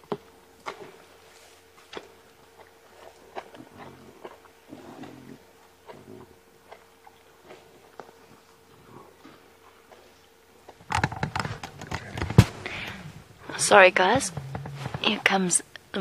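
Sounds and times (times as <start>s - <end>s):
lions chewing and crunching bone: 0.0s - 15.9s
faint steady hum: 0.0s - 16.0s.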